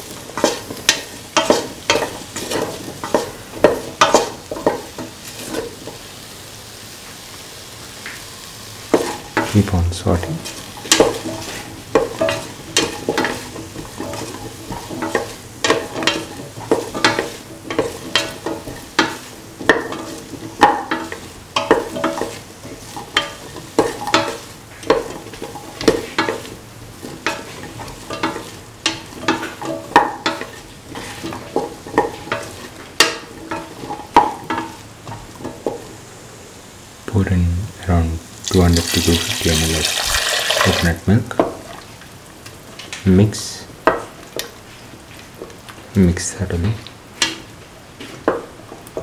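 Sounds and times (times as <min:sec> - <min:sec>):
vegetables sizzling in oil: 0:00.0 - 0:49.0.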